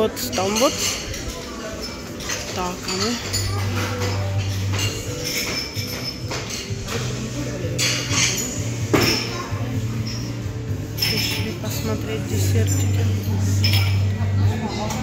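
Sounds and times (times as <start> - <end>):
dishes and cutlery clinking: 0.0 - 15.0.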